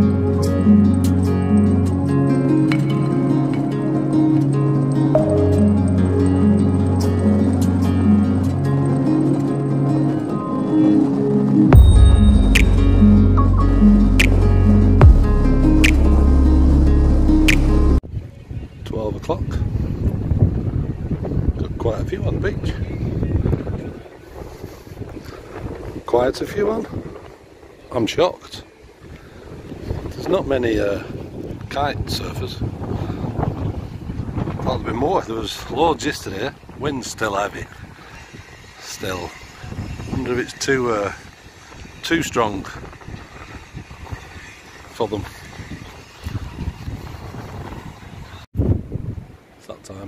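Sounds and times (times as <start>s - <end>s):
wind buffeting microphone: 18.0s - 49.7s.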